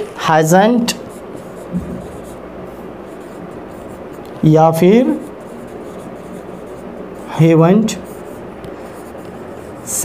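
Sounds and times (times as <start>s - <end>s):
marker pen writing on whiteboard: 0.8s - 10.0s.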